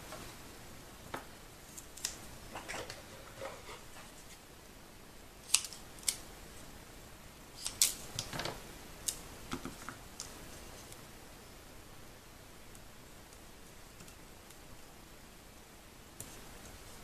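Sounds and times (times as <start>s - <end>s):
scissors snipping tape: 5.5s - 6.2s.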